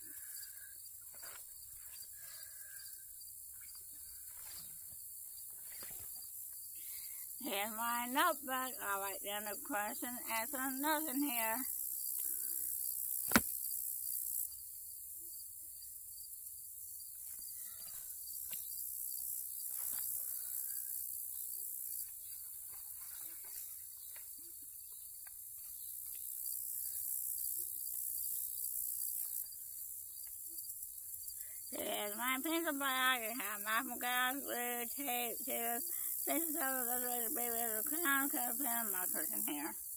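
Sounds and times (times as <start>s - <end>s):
insect chorus: 0.0s - 39.9s.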